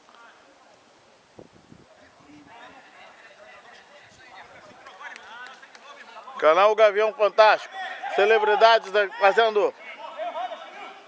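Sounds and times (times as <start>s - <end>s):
distant players shouting: 2.4s - 11.0s.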